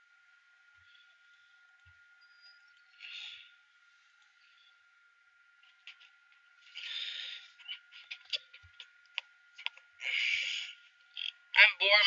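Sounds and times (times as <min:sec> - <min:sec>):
faint high whine: 0:00.0 - 0:12.0
faint clicks and taps: 0:01.8 - 0:02.0, 0:05.6 - 0:06.5, 0:07.6 - 0:09.9.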